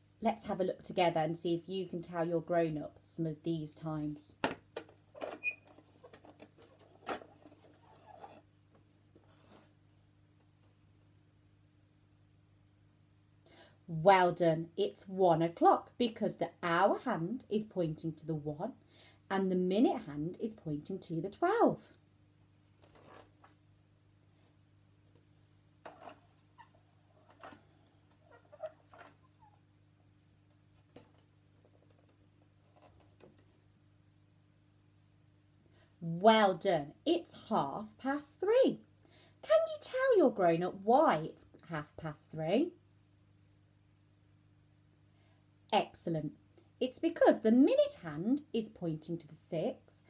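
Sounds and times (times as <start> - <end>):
low room hum: 0.0 - 50.0.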